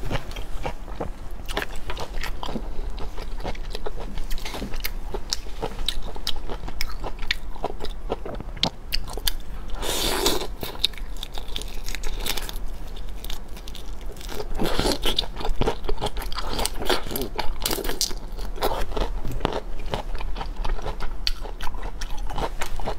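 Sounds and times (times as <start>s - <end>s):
wet chewing and crunching: 0.1s - 22.9s.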